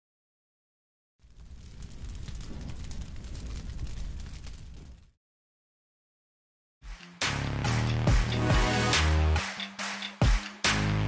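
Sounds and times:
fireball rumble with crackling: 1.2s - 5.2s.

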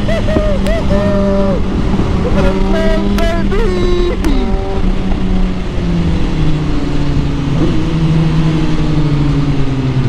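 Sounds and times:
motorcycle engine running: 0.0s - 10.0s
wind rushing over microphone: 0.0s - 10.0s.

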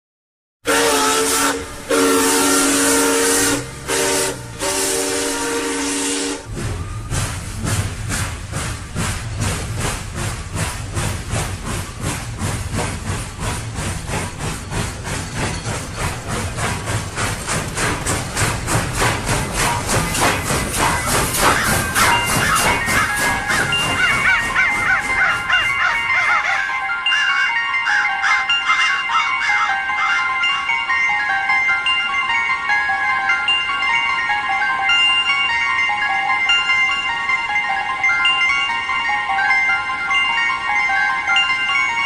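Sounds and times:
locomotive air horn blasts: 0.6s - 6.5s
train rumble and clatter: 0.7s - 42.0s.

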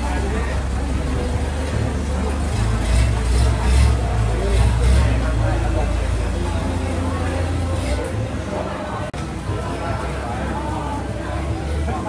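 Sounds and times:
low engine rumble: 0.0s - 12.0s
people talking: 0.0s - 12.0s.

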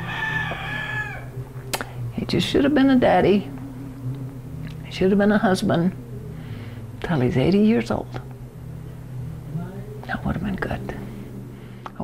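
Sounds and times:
rooster crowing: 0.0s - 1.5s.

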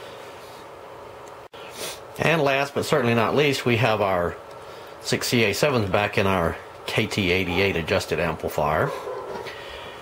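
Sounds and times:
low room hiss: 0.0s - 10.0s
person speaking: 2.2s - 9.0s.

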